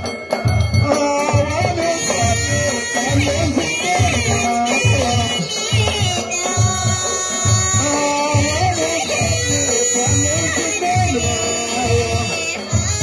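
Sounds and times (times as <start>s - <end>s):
frame drums beating: 0.0s - 13.0s
voices singing a chant: 0.7s - 13.0s.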